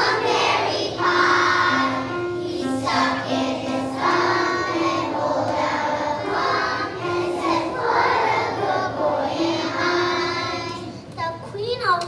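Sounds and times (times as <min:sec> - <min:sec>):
children singing in unison: 0:00.0 - 0:11.0.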